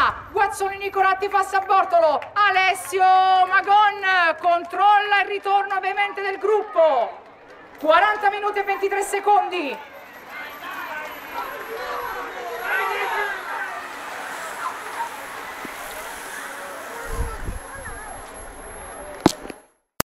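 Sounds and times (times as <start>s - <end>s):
spectators chattering and calling out: 0.0s - 19.7s
cyclists riding past: 7.1s - 19.7s.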